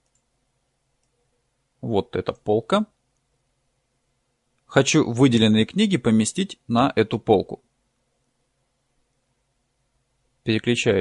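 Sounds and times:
computer mouse clicks: 0.0s - 0.3s, 1.0s - 1.2s
person speaking: 1.8s - 3.0s, 4.7s - 7.6s, 10.4s - 11.0s.

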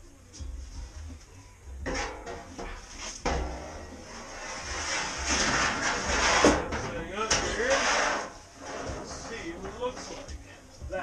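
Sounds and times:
faint music: 0.0s - 11.0s
metal panel knocking and scraping: 1.8s - 10.4s
long scraping rush: 3.8s - 10.1s.

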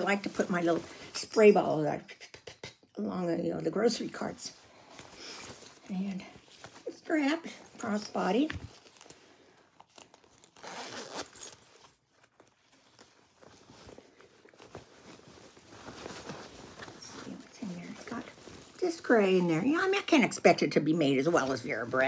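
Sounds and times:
fabric rustling: 0.0s - 2.0s, 3.1s - 22.0s
bag zipper being pulled: 10.5s - 11.6s.

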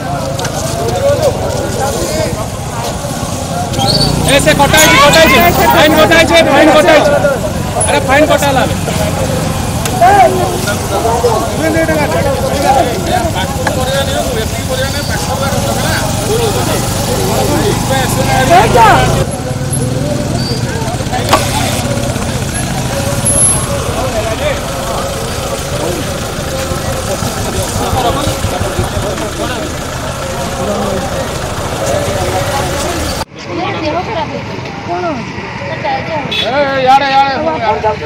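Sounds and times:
car engine idling: 0.0s - 33.3s
motorcycle engines idling: 0.0s - 33.3s
people talking: 0.0s - 38.0s.

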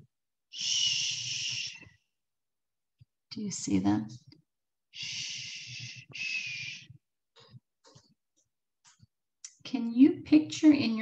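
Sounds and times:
woman shushing: 0.5s - 1.8s, 5.0s - 6.9s.

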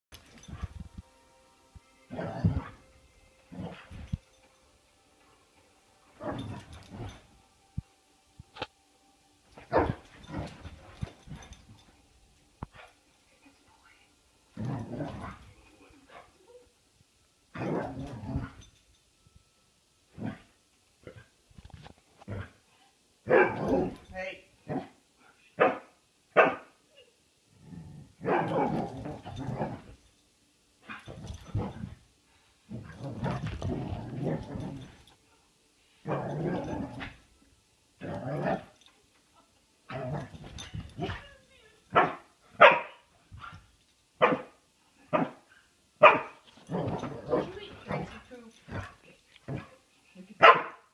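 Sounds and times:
dog growling: 14.6s - 15.5s, 32.7s - 35.0s, 36.1s - 37.2s
dog barking: 23.3s - 23.6s, 25.6s - 26.7s, 41.9s - 43.1s, 44.2s - 45.4s, 46.0s - 46.4s, 50.4s - 50.9s.

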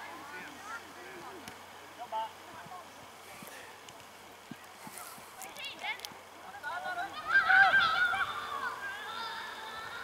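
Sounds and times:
children shouting: 6.6s - 10.0s.

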